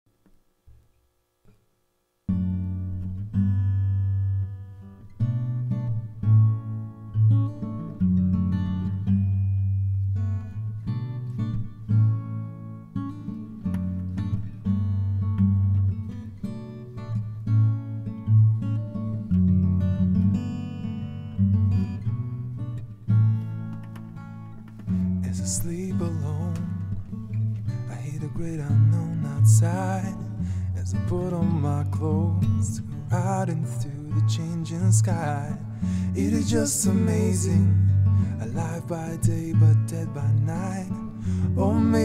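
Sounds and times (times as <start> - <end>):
acoustic guitar playing chords: 0.6 - 42.0.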